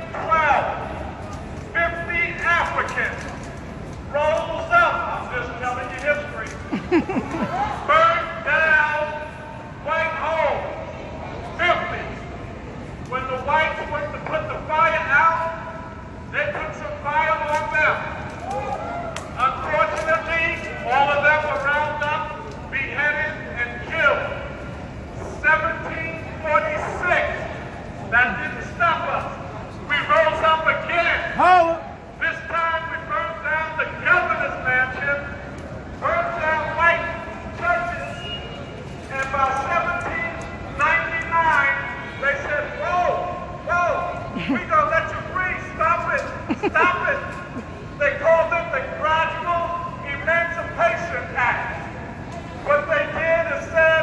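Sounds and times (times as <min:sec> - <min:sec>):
man speaking to a crowd: 0:00.0 - 0:03.5, 0:04.1 - 0:06.6, 0:07.4 - 0:12.3, 0:13.1 - 0:18.7, 0:19.4 - 0:24.6, 0:25.2 - 0:54.0.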